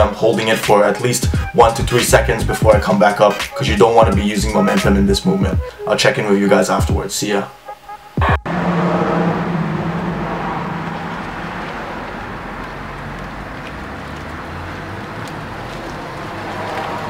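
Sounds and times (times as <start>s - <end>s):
road traffic passing: 7.8s - 17.0s.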